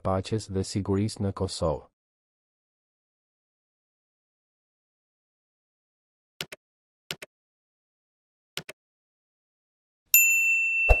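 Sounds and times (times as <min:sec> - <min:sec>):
bell-like ding: 0:10.2 - 0:11.0.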